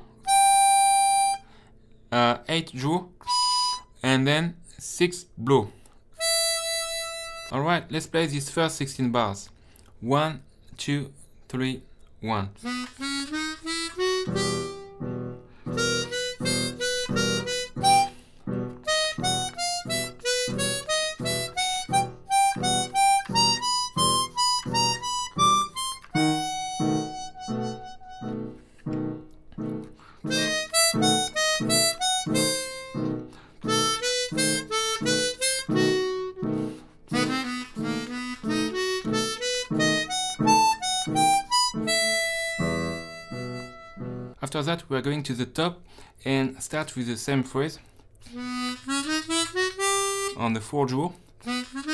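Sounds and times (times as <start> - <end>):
harmonica jazz melody: 0.0 - 1.7, 3.2 - 4.3, 6.2 - 7.8, 12.6 - 44.4, 48.2 - 50.8, 51.4 - 51.9.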